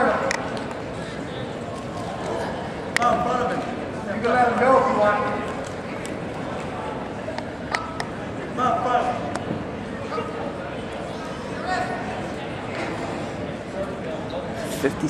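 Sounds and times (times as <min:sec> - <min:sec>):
crowd murmur: 0:00.0 - 0:15.0.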